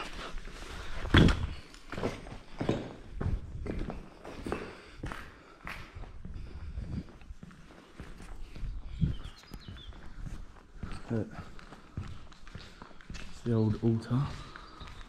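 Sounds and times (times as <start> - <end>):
footsteps on rubble-strewn concrete: 0.0 - 15.0.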